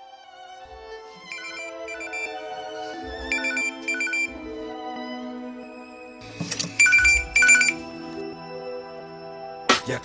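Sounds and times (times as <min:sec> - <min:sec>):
mobile phone ringing: 0:01.3 - 0:02.6, 0:03.2 - 0:04.4, 0:06.8 - 0:07.8.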